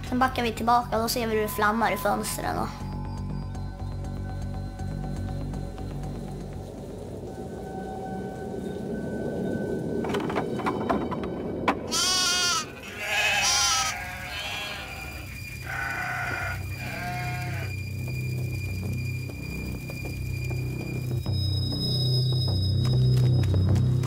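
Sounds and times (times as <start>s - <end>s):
sheep bleating: 11.9s - 17.7s.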